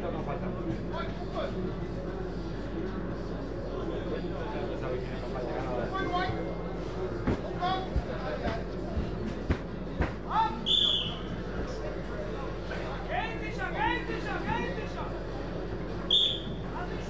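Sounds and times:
referee's whistle blasts: 10.6s - 11.2s, 16.1s - 16.6s.

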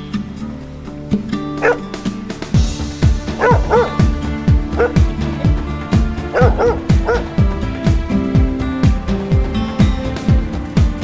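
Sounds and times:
background music with drum beat: 0.0s - 11.0s
dog yipping: 1.6s - 1.9s, 3.4s - 4.0s, 4.8s - 5.0s, 6.3s - 7.3s.

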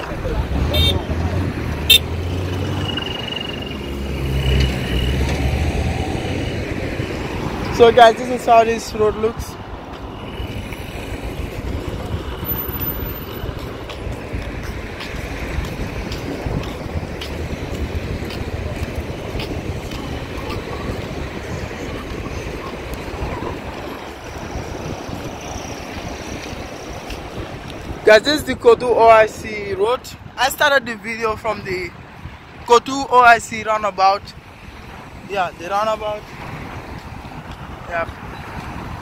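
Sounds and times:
road traffic passing: 0.0s - 39.0s
wind rushing on microphone: 0.0s - 39.0s.

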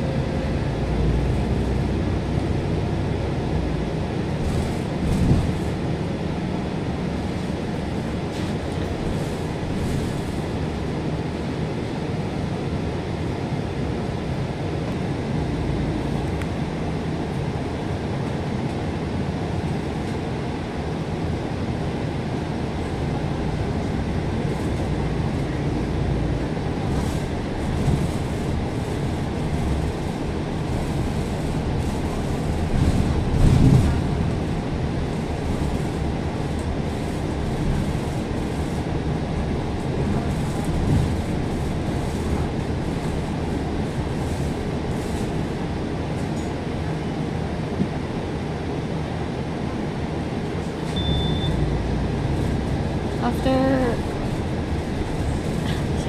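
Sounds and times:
bus engine and tyres droning: 0.0s - 56.0s.

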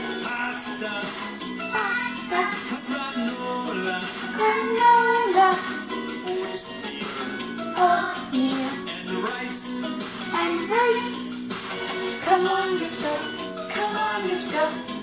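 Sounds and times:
children's song with accompaniment: 0.0s - 15.0s.

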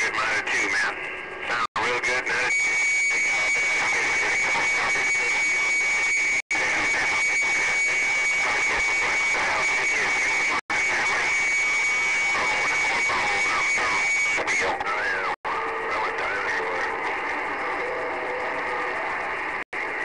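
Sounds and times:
radio static hiss: 0.0s - 20.0s.

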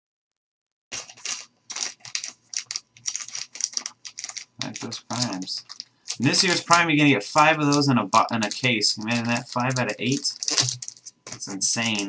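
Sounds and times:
plastic bag crinkling: 0.9s - 12.0s.

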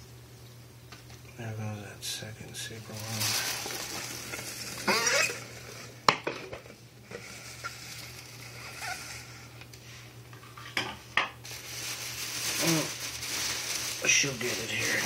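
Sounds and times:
steady low hum: 0.0s - 15.0s.

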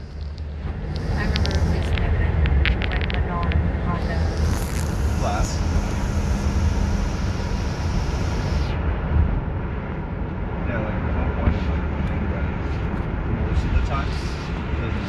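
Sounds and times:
road and engine rumble in car cabin: 0.0s - 15.0s.

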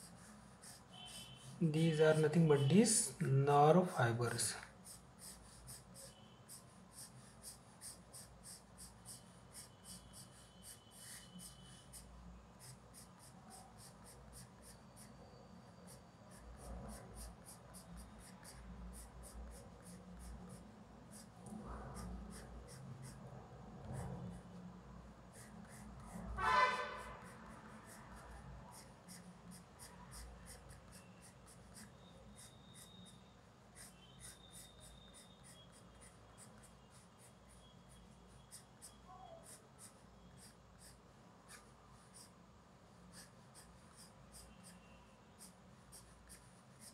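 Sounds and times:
pencil scratching on paper: 0.0s - 46.9s.

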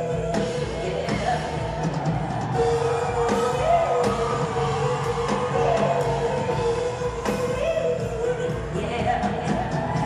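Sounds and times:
band with drums: 0.0s - 10.0s
piano: 0.0s - 10.0s.

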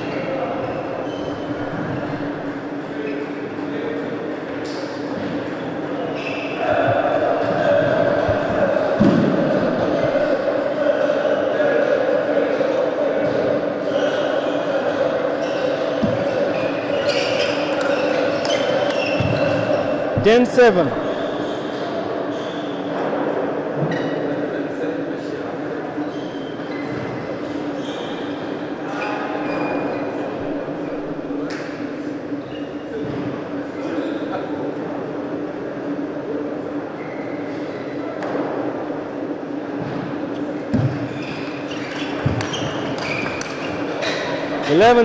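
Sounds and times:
faint voices: 0.0s - 42.2s.

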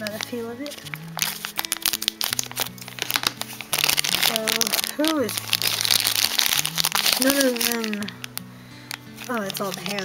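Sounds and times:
background music: 0.0s - 10.0s
plastic wrapper crinkling: 0.0s - 10.0s
scissors cutting plastic: 0.1s - 8.3s, 9.2s - 10.0s.

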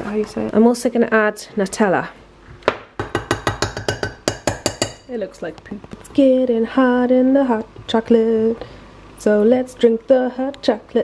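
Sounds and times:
metal spoon clinking against saucepan: 3.2s - 5.1s.

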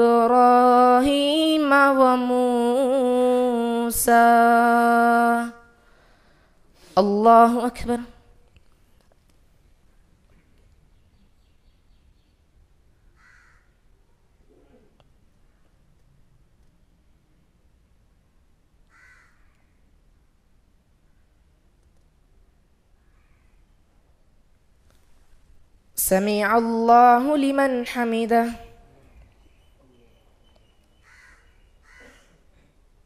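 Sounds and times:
crow cawing: 13.2s - 13.8s, 18.9s - 19.6s, 31.0s - 32.3s.

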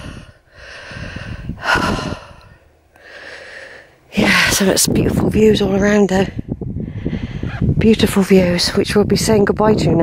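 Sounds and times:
person breathing: 0.0s - 4.0s, 6.8s - 7.6s.

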